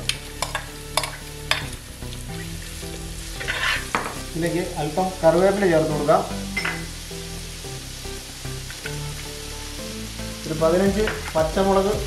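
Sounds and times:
background music of held notes: 0.0 - 12.0
onions sizzling in hot oil: 0.0 - 12.0.

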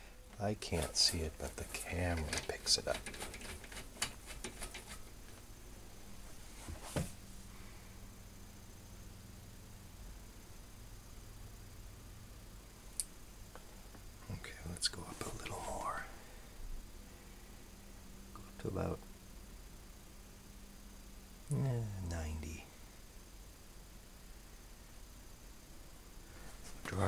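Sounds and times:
faint mains hum: 0.0 - 27.0
speaker clicks and crackles: 0.3 - 5.5.

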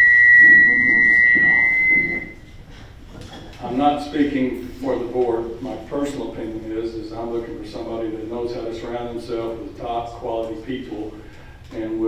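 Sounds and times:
microphone feedback ringing: 0.0 - 2.5.

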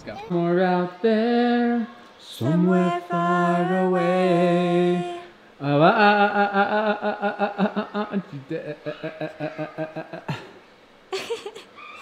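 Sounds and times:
woman singing: 0.9 - 5.4.

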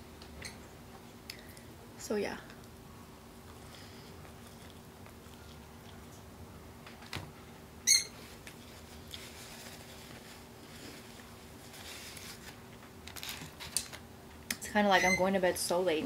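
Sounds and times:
high-pitched squeak: 7.9 - 8.2, 15.0 - 15.3.

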